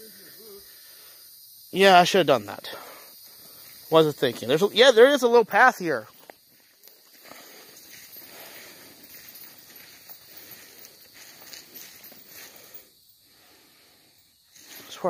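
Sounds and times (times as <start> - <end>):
footsteps on woodland path: 3.1 - 15.0
rustling undergrowth: 3.1 - 15.0.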